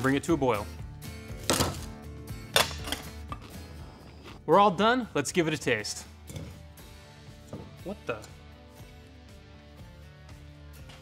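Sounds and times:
background music: 0.0 - 11.0
vegetables dropped into metal pot: 1.5 - 1.9.

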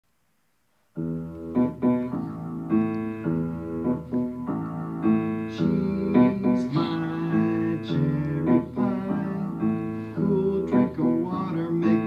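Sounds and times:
upright piano chords: 0.9 - 12.0.

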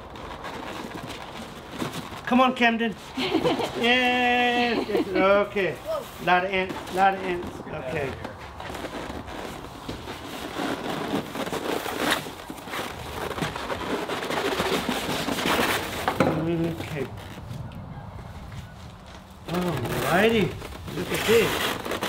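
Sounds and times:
cardboard box and styrofoam scraping: 0.0 - 17.2, 19.5 - 22.0.

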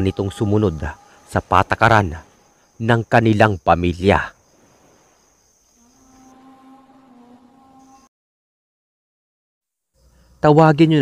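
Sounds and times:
crickets chirring: 0.0 - 8.1, 9.9 - 11.0.

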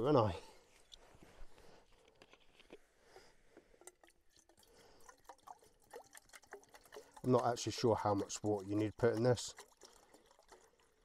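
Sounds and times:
water pouring into metal pot: 3.8 - 11.0.

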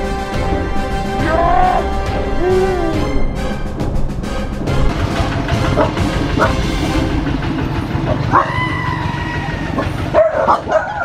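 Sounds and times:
dog whining: 1.2 - 3.2, 8.1 - 11.0
dog yelping barks: 8.1 - 8.8, 9.7 - 11.0.

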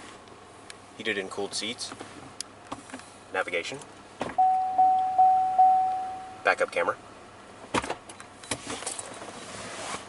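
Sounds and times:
electronic warning chimes: 4.4 - 6.5.

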